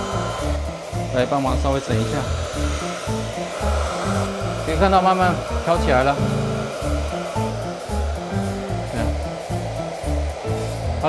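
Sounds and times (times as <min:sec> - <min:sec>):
background music with bass line: 0:00.0 - 0:11.0
hot-air blower rushing: 0:00.0 - 0:11.0.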